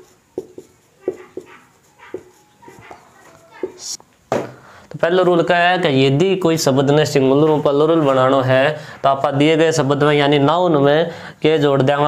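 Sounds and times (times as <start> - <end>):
marker squeaking on whiteboard: 0.0 - 4.0.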